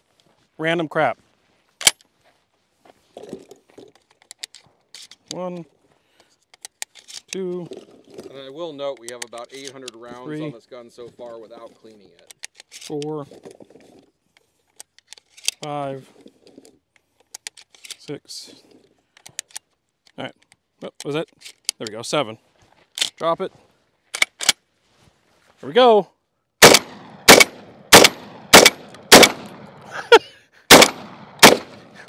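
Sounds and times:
light clicks and rustling of shells: 0:03.1 - 0:10.4, 0:11.0 - 0:23.4.

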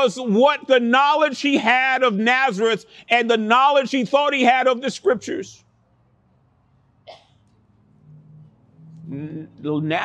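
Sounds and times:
low steady hum: 0:05.6 - 0:10.0.

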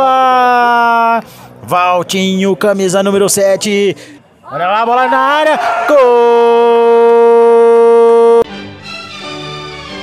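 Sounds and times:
narrator shouting goal: 0:04.5 - 0:08.4.

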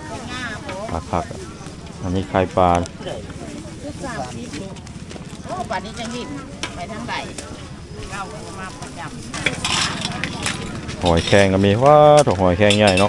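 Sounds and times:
people talking faintly: 0:00.0 - 0:11.8.

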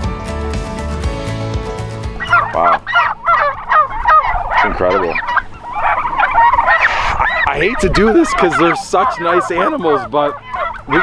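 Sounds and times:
turkeys calling: 0:02.0 - 0:11.0.

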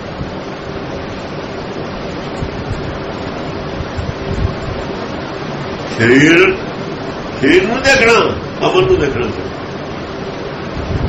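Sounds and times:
recording hiss: 0:00.0 - 0:11.0.

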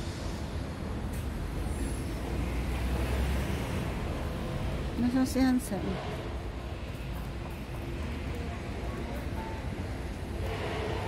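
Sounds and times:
vehicle rumbling past: 0:01.4 - 0:06.9.

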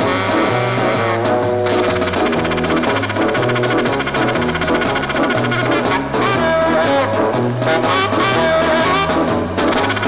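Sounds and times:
instrumental tv theme music: 0:00.0 - 0:10.0.

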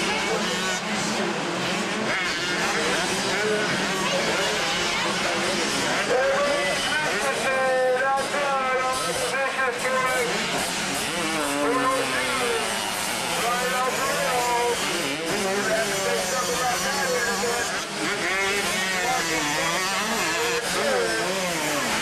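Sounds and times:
motocross bikes revving: 0:00.0 - 0:22.0.

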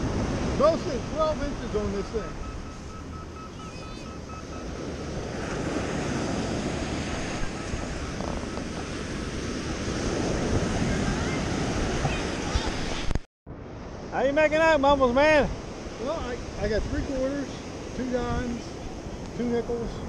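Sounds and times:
surf breaking on beach: 0:00.0 - 0:02.9, 0:04.6 - 0:13.2
wind buffeting microphone: 0:00.0 - 0:20.0.

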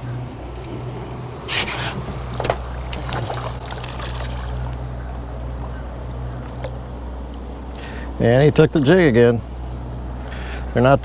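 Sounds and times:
boat motor idling: 0:00.0 - 0:11.0
fish splashing at surface: 0:02.9 - 0:04.7.

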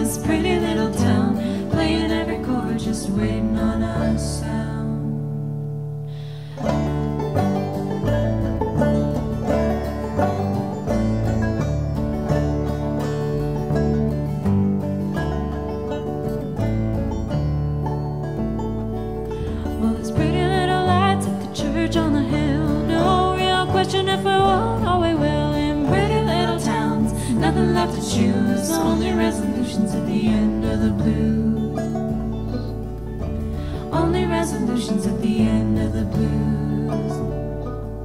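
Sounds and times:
acoustic guitar: 0:00.0 - 0:38.0
plucked banjo: 0:00.0 - 0:38.0
upright bass: 0:00.0 - 0:38.0.

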